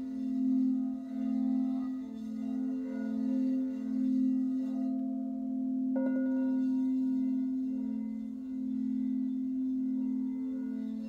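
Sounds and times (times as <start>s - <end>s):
singing bowl low steady tone: 0.0s - 11.0s.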